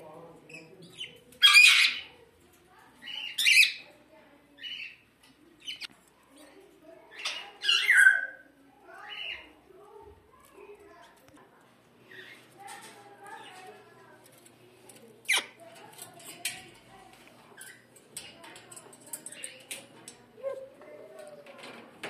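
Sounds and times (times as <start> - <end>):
birds squawking: 7.2 - 8.4.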